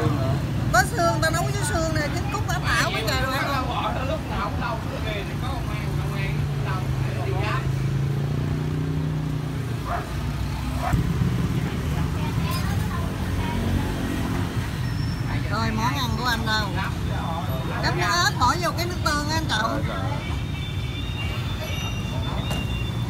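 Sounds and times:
traffic rumbling: 0.0s - 23.0s
vehicle engine humming: 0.0s - 23.0s.

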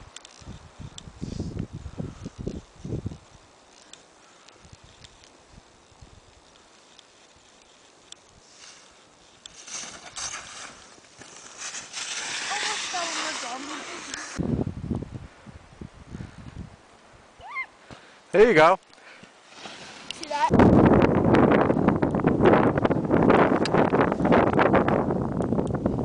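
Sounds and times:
skis scraping over snow: 5.9s - 14.4s, 19.4s - 20.5s.

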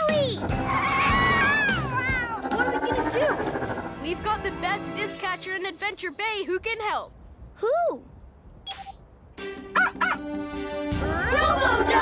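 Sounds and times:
robot dog honk-like barks: 9.7s - 10.2s.

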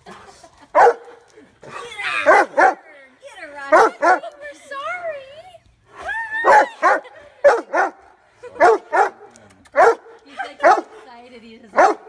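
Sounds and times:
dog yelping barks: 0.8s - 1.1s, 6.4s - 8.0s, 8.6s - 10.9s, 11.8s - 12.0s.

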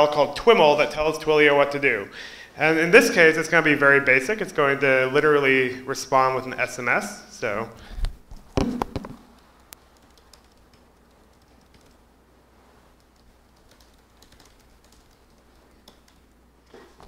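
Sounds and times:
faint computer keyboard typing: 9.4s - 12.0s, 13.0s - 16.4s.

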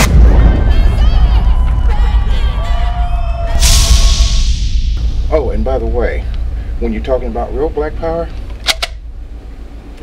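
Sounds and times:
sharp hissing swoosh hit: 3.5s - 8.3s.

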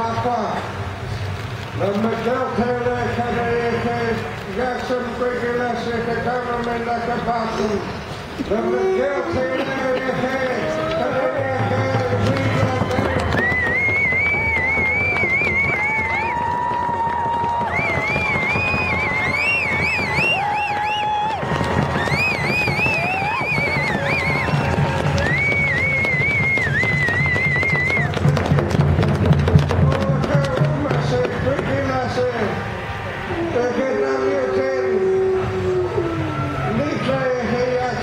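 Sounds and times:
murmur of large crowd: 0.0s - 38.0s
group giving wavering high cries: 32.6s - 37.3s.

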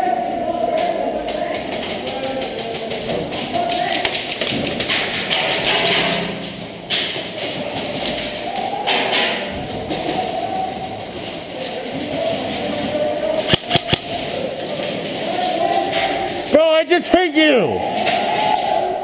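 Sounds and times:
indoor room noise: 0.0s - 19.0s
sharp cracks: 1.3s - 10.6s, 11.2s - 16.6s.

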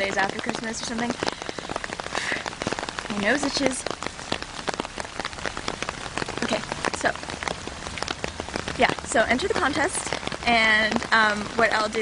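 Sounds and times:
rain hitting an umbrella: 0.0s - 12.0s.

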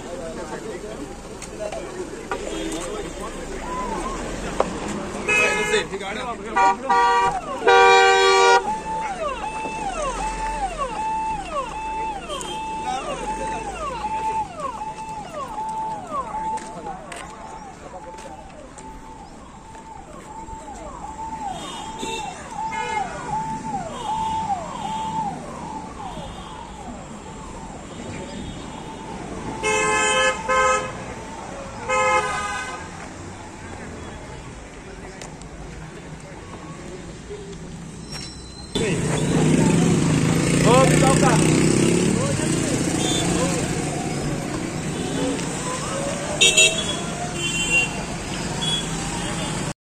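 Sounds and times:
passing motorcycles and cars: 0.0s - 31.9s, 32.6s - 49.8s
vehicle horn toots: 6.6s - 8.7s, 29.6s - 31.0s, 46.4s - 48.0s.

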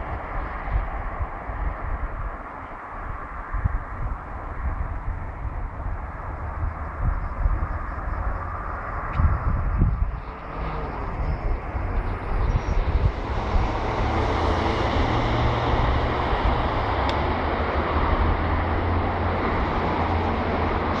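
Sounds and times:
diesel train rumbling: 10.0s - 21.0s.

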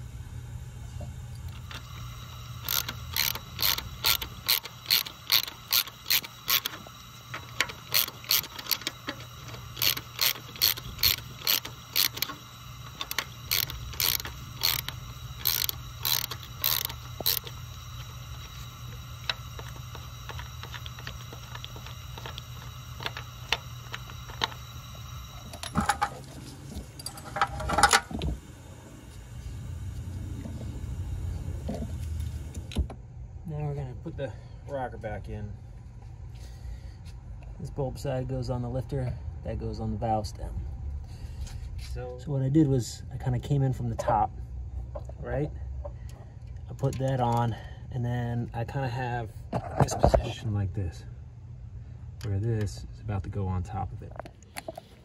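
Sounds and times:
ratchet wrench clicking: 2.6s - 24.6s.

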